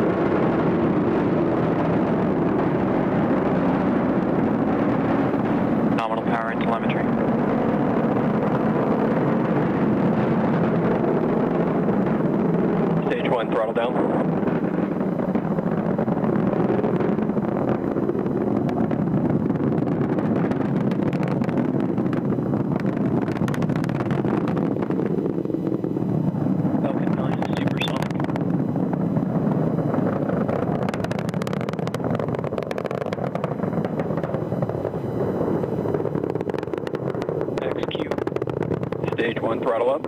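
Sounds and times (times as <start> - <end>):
rocket engines roaring: 0.0 - 40.0.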